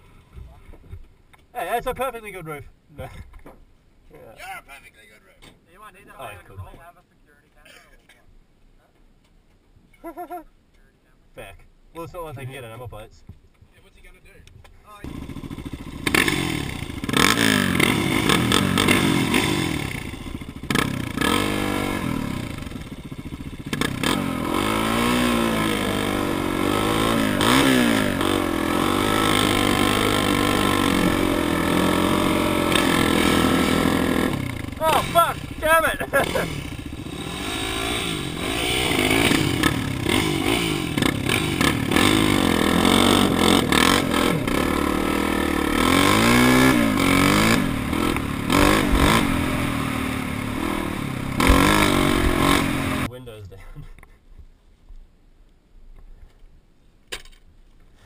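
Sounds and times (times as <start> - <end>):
bike pulling away: 15.0 - 53.1
dirt bike engines revving: 15.0 - 53.2
fluttering engine passing: 15.1 - 53.1.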